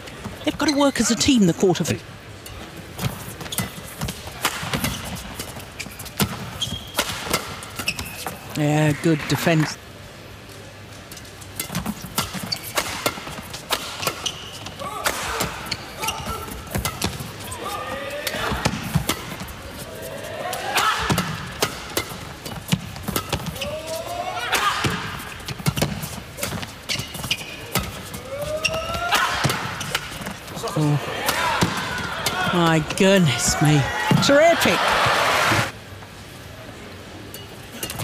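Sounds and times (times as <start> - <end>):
shoes squealing on court: 4.8 - 8.5, 11.6 - 19.3, 24.8 - 30.6
rackets hitting shuttlecock: 11.6 - 15.7, 16.3 - 17.3.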